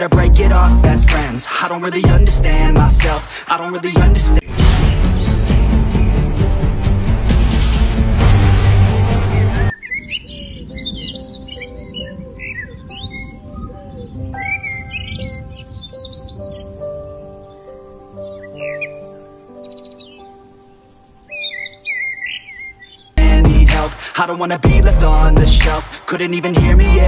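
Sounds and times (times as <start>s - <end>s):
loud music: 0.0s - 9.7s, 23.2s - 27.0s
small birds chirping: 9.3s - 23.3s.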